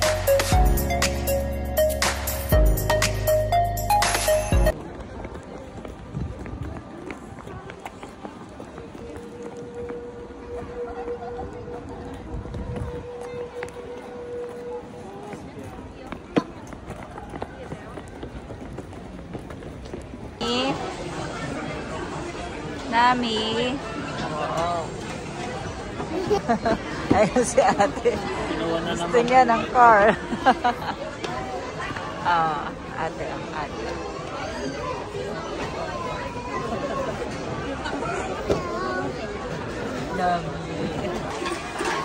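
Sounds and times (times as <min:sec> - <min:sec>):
people chattering: 0:00.0 - 0:42.0
footsteps on stone paving: 0:04.7 - 0:10.0, 0:11.5 - 0:20.4
faint voices: 0:04.7 - 0:42.0.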